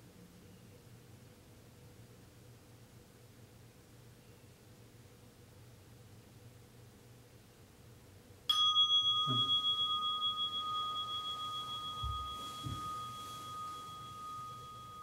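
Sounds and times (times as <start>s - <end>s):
meditation bell ringing: 8.5s - 15.0s
soft thuds of body movement: 11.4s - 14.6s.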